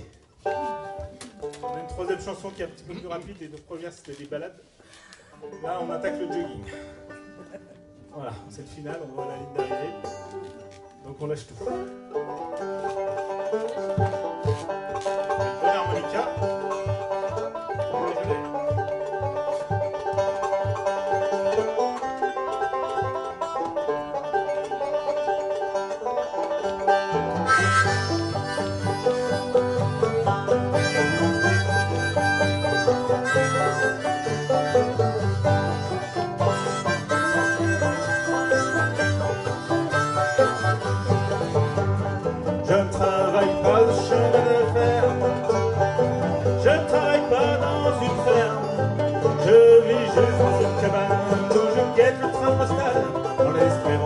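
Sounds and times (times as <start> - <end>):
banjos picking: 0.0 - 4.4, 5.4 - 54.0
acoustic guitar: 3.8 - 54.0.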